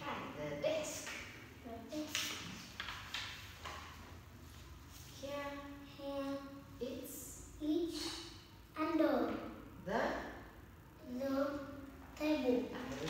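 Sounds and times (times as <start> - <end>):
woman talking: 0.0 - 1.1, 9.8 - 10.4.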